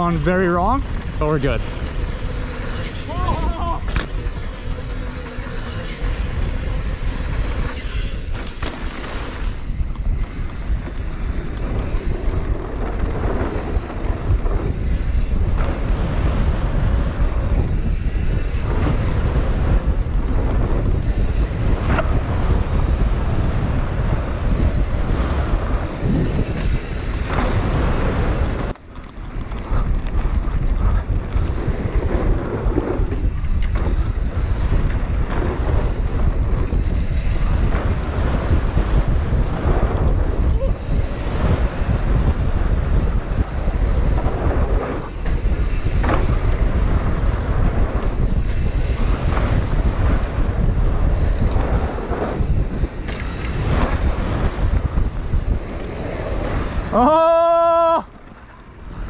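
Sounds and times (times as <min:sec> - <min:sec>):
bike rattles and knocks: 0:00.0 - 0:59.0
bike tyre noise: 0:00.0 - 0:59.0
wind buffeting microphone: 0:00.0 - 0:59.0.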